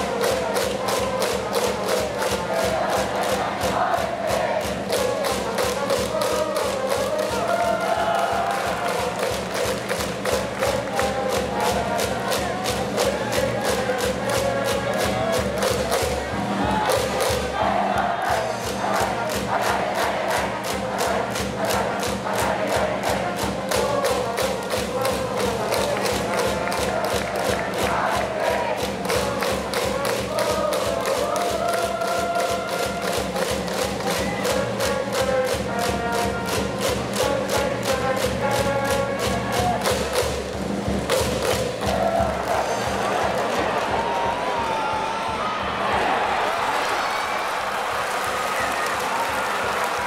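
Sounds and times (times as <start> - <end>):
steady drum beat: 0.0 - 46.7
band playing cheering tune: 0.0 - 50.0
crowd chanting: 1.6 - 5.8, 11.4 - 24.4, 25.0 - 32.2, 41.8 - 50.0.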